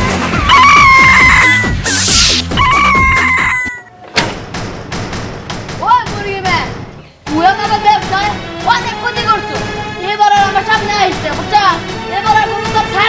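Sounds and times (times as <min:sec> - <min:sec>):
rooster crowing: 0:00.0 - 0:01.8, 0:02.6 - 0:04.0
background music: 0:00.0 - 0:13.0
sharp knock: 0:04.1 - 0:06.2.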